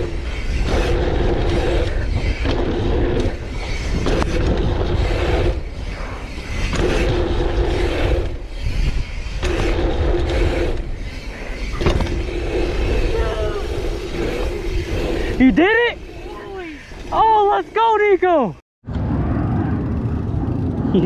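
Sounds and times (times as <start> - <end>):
bike freehub buzzing: 0.0 - 18.3
wind and tyres on dirt: 0.0 - 21.0.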